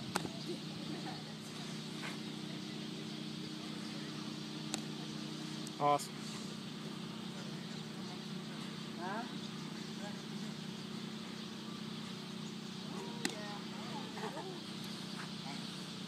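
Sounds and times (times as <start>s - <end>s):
faint distant voices: 0.0s - 16.0s
steady low hum: 0.0s - 16.0s.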